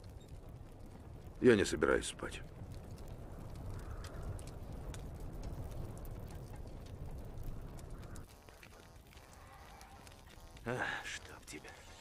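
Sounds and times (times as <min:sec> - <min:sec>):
campfire crackling: 0:00.0 - 0:12.0
low rumble of wind: 0:00.0 - 0:12.0.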